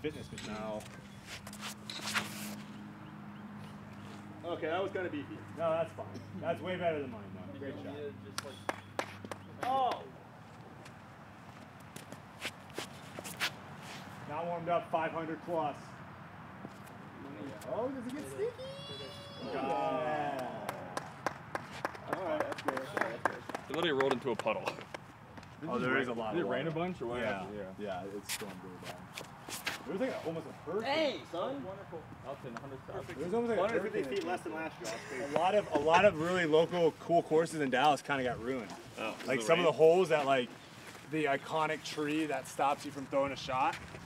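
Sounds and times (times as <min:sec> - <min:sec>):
people talking: 0:00.0 - 0:01.0, 0:17.2 - 0:21.0, 0:22.0 - 0:24.9, 0:25.6 - 0:29.0, 0:29.8 - 0:40.5, 0:41.1 - 0:43.8
footsteps scuffing on concrete: 0:10.5 - 0:14.2, 0:28.2 - 0:29.9, 0:43.0 - 0:44.0.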